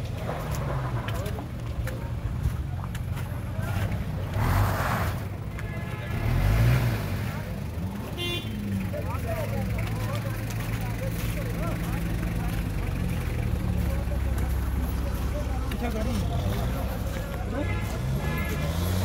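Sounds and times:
car engines rumbling: 0:00.0 - 0:19.0
voices in background: 0:00.0 - 0:19.0.

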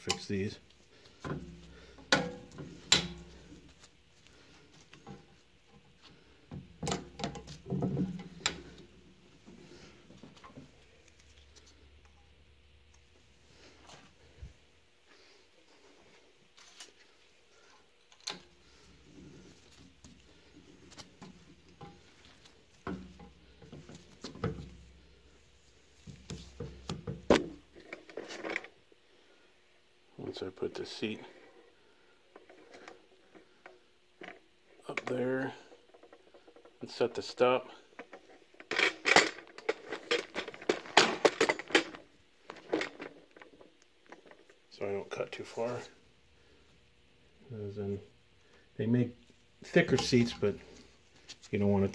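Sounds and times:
metal clicks and knocks: 0:01.3 - 0:03.4
metal clinks and knocks: 0:38.0 - 0:44.5.

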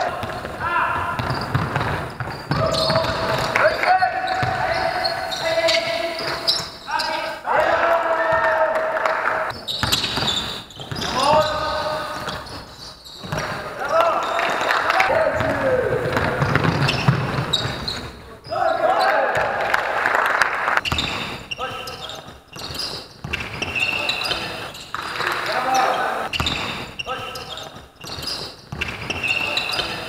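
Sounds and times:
basketball bouncing on court: 0:00.0 - 0:06.4, 0:09.5 - 0:13.7, 0:15.1 - 0:18.6, 0:19.4 - 0:19.6, 0:20.8 - 0:25.4, 0:26.3 - 0:30.0
players calling out: 0:00.0 - 0:30.0.

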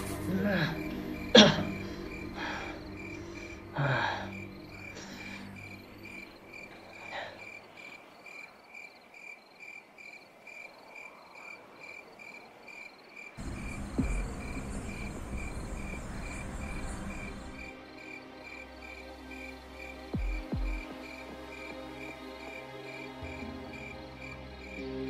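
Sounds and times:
low rumbling music drone: 0:00.0 - 0:07.4, 0:13.4 - 0:25.0
crickets chirping: 0:00.0 - 0:25.0.

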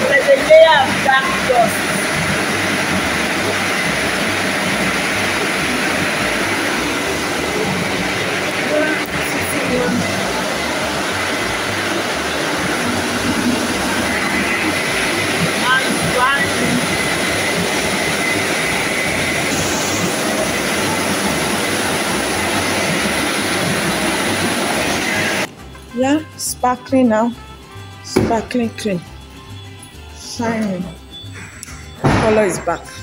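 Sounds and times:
car wash machine rushing: 0:00.0 - 0:25.5.

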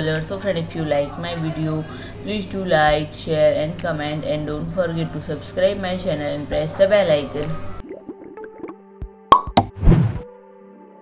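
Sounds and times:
cartoon pops: 0:09.3 - 0:10.0.

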